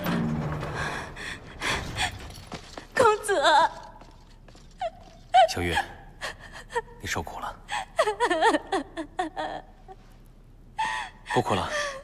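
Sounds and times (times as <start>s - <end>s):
woman sobbing: 4.7s - 7.0s, 7.7s - 10.0s.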